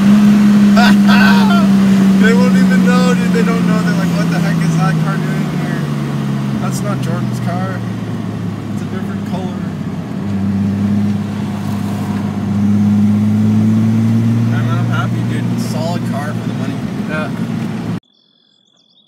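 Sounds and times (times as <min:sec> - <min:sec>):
car engine while driving: 0:00.0 - 0:18.0.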